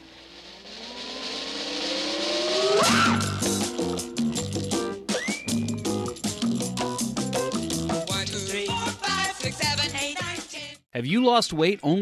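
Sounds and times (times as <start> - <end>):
rising engine-like tone: 0.0 - 4.0.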